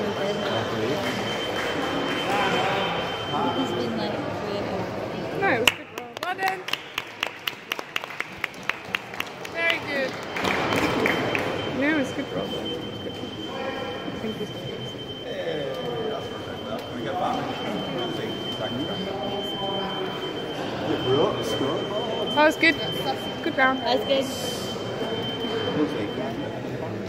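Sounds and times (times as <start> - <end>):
spectators chattering in a hall: 0.0 - 27.0
rapid hand clapping: 5.6 - 11.5.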